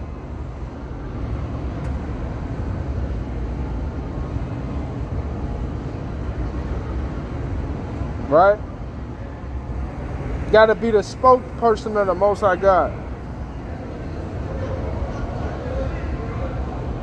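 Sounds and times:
city street traffic: 0.0s - 17.0s.

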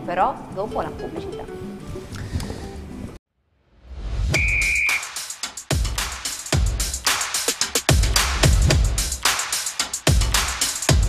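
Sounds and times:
high whistle-like tone: 4.3s - 5.3s.

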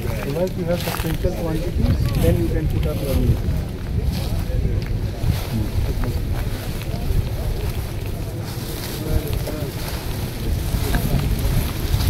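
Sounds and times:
indistinct crowd voices: 0.0s - 12.0s
wind buffeting microphone: 0.0s - 12.0s.

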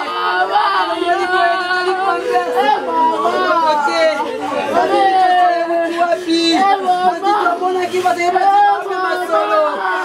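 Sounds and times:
murmur of voices: 0.0s - 10.0s.

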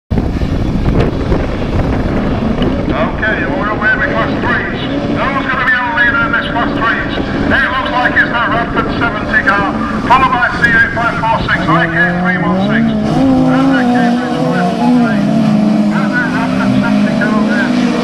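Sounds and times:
wind buffeting microphone: 0.1s - 18.0s
racing car engines: 0.4s - 18.0s.

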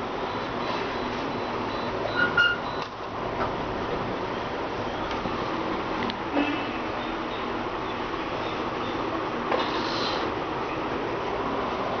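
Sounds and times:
printer fans and motors whirring: 0.0s - 12.0s.

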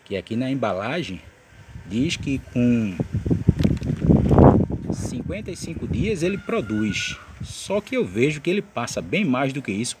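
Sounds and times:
wind buffeting microphone: 1.5s - 7.8s.

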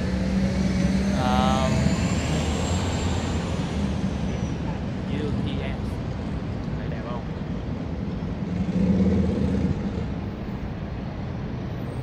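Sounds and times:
vehicle engines running: 0.0s - 12.0s.

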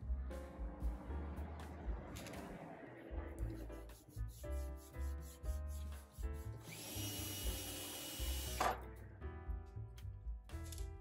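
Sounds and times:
background music: 0.0s - 11.0s
cordless drill whining: 6.6s - 8.7s.

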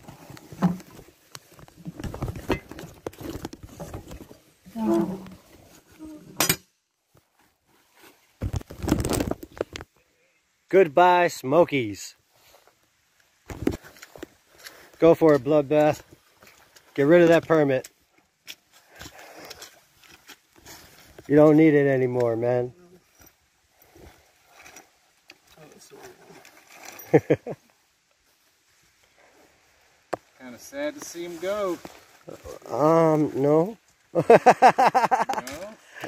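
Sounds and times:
handling knocks and rustles: 0.0s - 10.0s.

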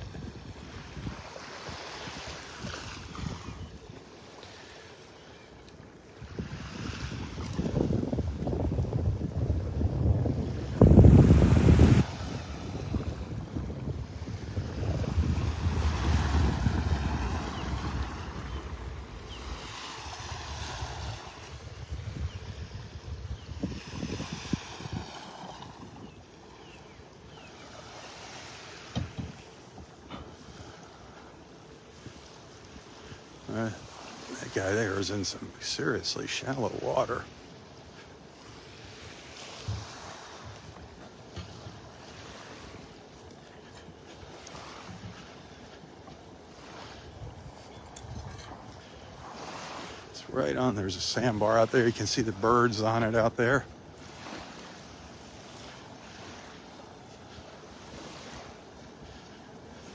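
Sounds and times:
wind buffeting microphone: 0.0s - 4.1s, 6.2s - 29.5s, 38.8s - 59.9s
small waves lapping on sand: 0.0s - 59.9s.

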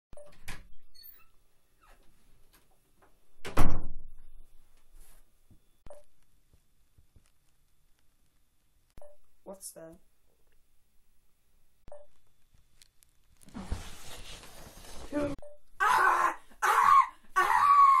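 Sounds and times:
door closing with a thump: 3.4s - 4.2s
boy crying out: 15.8s - 18.0s.

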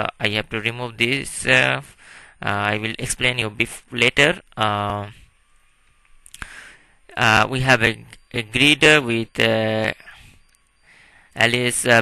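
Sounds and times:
faint breath: 1.9s - 2.4s, 6.3s - 7.1s, 10.0s - 11.4s.

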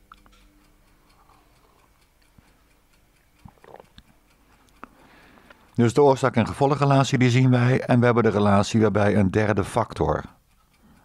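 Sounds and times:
clock ticking: 0.0s - 11.0s.

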